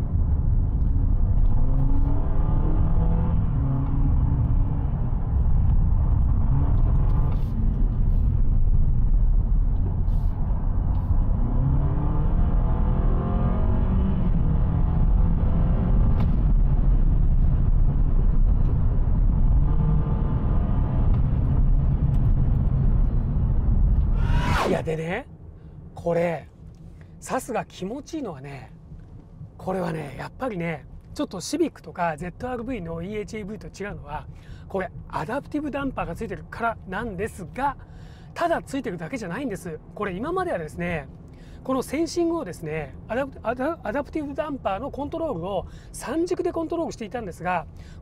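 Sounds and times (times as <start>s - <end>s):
road noise rumble: 0.0s - 48.0s
car engine revving under acceleration: 1.3s - 7.3s, 10.7s - 17.6s, 19.0s - 21.4s.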